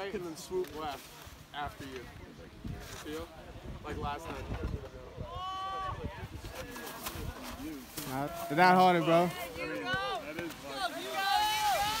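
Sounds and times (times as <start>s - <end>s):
wind rumble on microphone: 1.6s - 7.8s.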